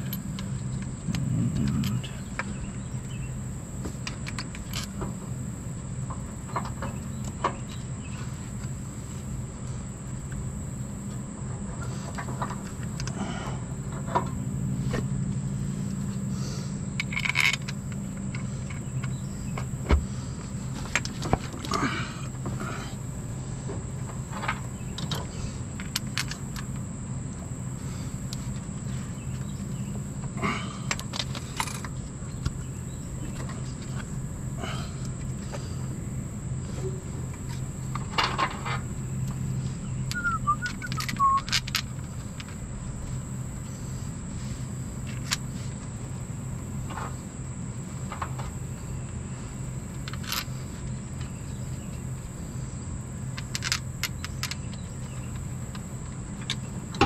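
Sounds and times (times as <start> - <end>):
steady high whine: 0.0 - 57.0
steady low hum: 0.0 - 57.0.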